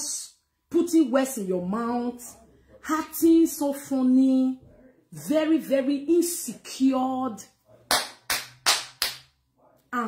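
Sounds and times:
person clapping hands: 0:07.9 - 0:09.4.

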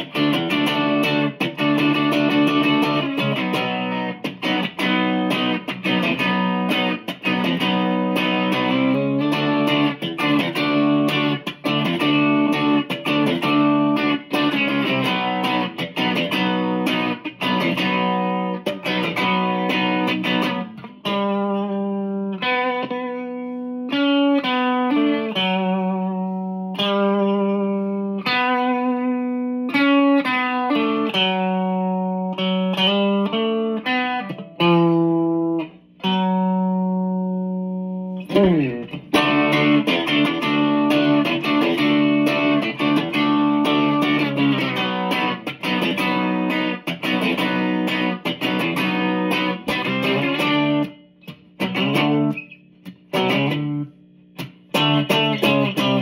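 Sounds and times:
electric guitar strumming chords: 0:00.0 - 0:56.0.

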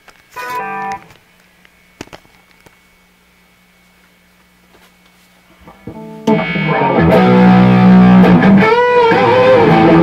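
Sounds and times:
amp hum: 0:00.0 - 0:10.0
distorted electric guitar: 0:00.3 - 0:01.2, 0:05.6 - 0:10.0.

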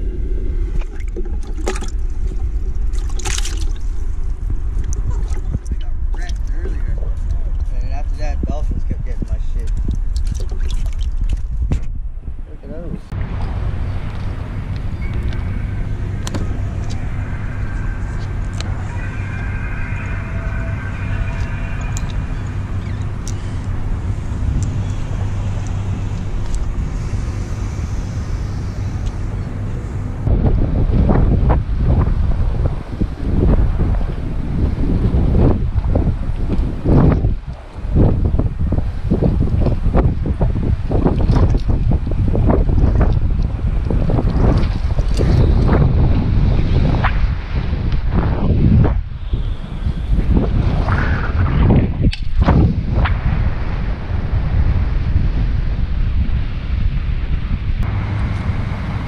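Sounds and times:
steady low hum: 0:00.0 - 0:59.0
wind buffeting microphone: 0:00.0 - 0:59.0.

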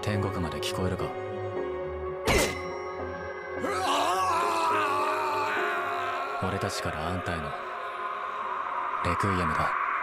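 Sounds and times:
man screaming in pain: 0:03.6 - 0:08.2.

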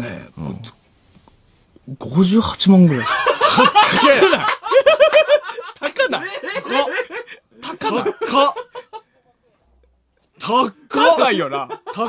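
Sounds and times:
men laughing: 0:03.0 - 0:09.1, 0:11.0 - 0:12.0.

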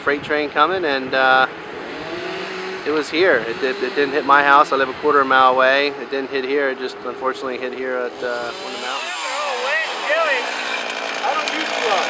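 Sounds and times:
chainsaw engine revving: 0:01.7 - 0:04.3, 0:08.1 - 0:12.0.

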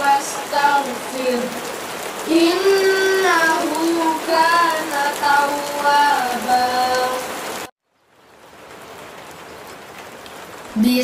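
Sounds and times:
steady rainfall hiss: 0:00.0 - 0:11.0.

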